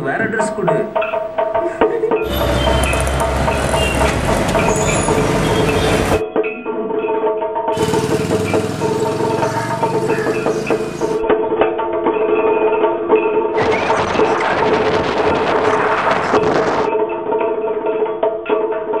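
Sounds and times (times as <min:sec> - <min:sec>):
background music: 0:00.0 - 0:13.6
motorbike engines: 0:02.2 - 0:06.2, 0:07.7 - 0:11.2.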